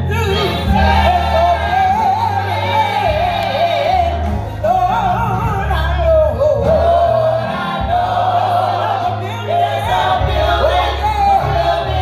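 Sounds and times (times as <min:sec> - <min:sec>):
lead voice singing: 0:00.0 - 0:12.0
low instrumental accompaniment: 0:00.0 - 0:12.0
women's group singing: 0:00.3 - 0:04.4, 0:06.5 - 0:12.0.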